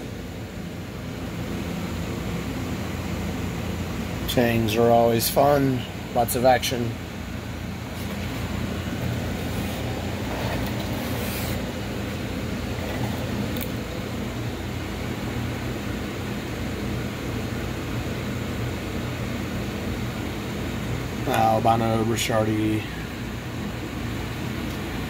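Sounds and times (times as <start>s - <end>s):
low mechanical hum: 0.0s - 25.0s.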